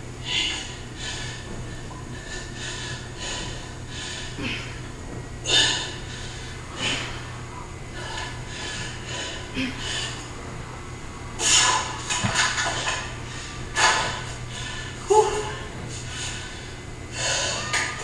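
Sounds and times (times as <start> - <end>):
woman breathing hard: 0.2 - 10.3, 13.1 - 17.8.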